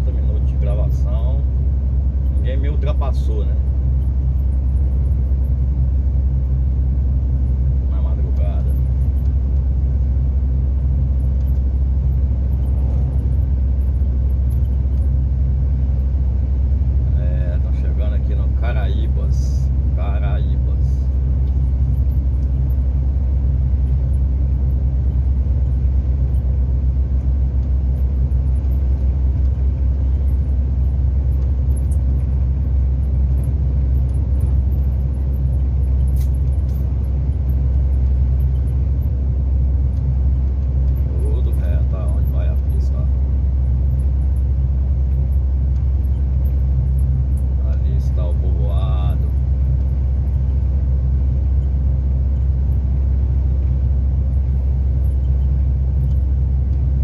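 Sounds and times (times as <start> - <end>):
diesel truck engine drone: 0.0 - 57.0
road noise: 0.0 - 57.0.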